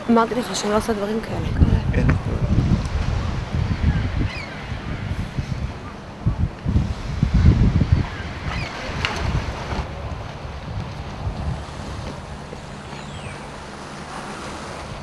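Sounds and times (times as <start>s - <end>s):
sea: 0.0s - 15.0s
wind buffeting microphone: 0.0s - 15.0s.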